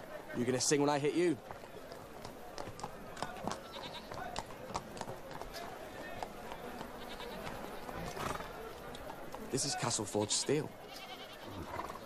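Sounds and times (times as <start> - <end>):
faint animal calls: 10.2 - 12.0.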